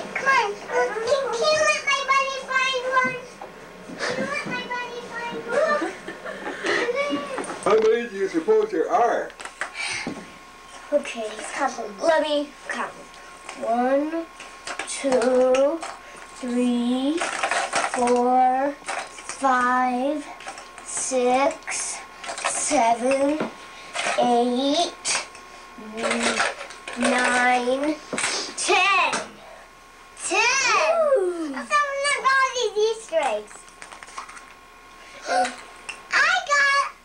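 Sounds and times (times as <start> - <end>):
plastic eggs clattering in bowl: 17.1 - 18.1.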